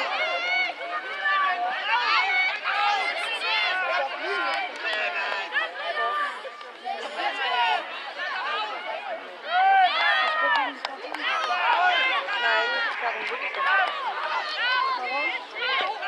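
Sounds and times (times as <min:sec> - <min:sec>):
young voices shouting: 0:00.0 - 0:16.0.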